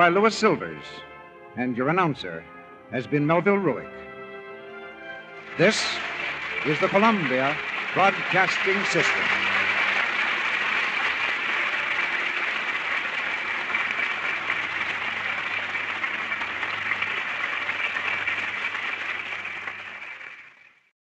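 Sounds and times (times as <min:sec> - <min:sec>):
studio audience applauding: 0:05.3 - 0:20.9.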